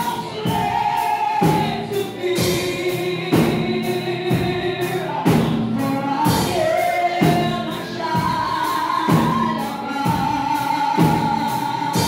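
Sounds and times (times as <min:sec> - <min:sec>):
group of voices singing: 0:00.0 - 0:12.0
woman singing into microphone: 0:00.0 - 0:12.0.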